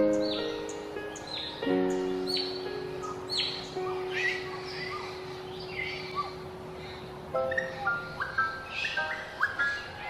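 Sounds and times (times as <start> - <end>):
bird warbling notes: 0.0 - 10.0
myna calling: 2.3 - 6.5, 7.4 - 10.0.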